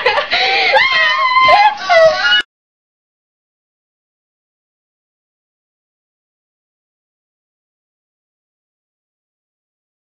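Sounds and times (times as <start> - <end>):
person whining high-pitched: 0.7 - 2.4.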